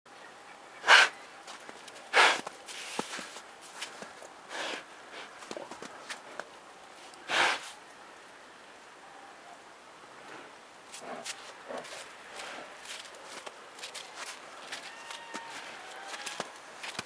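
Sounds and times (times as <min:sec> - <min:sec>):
bear sniffing in snow: 0:00.8 - 0:01.2, 0:02.1 - 0:03.4, 0:04.5 - 0:05.4, 0:07.2 - 0:07.8
bear snorting: 0:00.8 - 0:01.2, 0:02.1 - 0:03.1, 0:07.2 - 0:07.8, 0:10.2 - 0:13.2.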